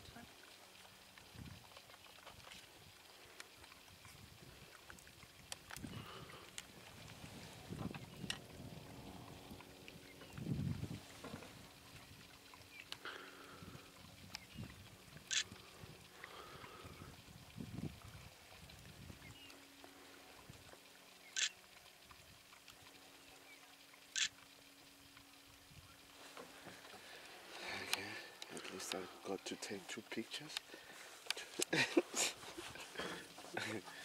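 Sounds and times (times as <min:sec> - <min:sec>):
faint steady low hum: 0:00.0 - 0:34.0.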